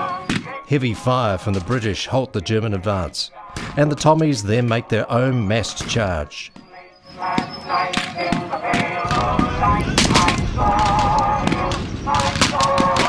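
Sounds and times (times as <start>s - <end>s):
rifle and machine-gun fire: 8.7s - 13.0s.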